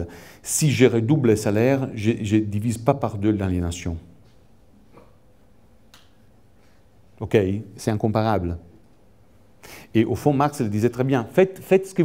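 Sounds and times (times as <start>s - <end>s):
faint sharp click: 5.9s - 6.2s.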